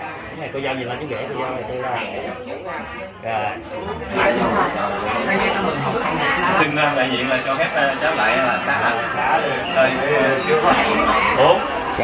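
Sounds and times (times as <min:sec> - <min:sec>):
overlapping chatter of people: 0:00.0 - 0:12.0.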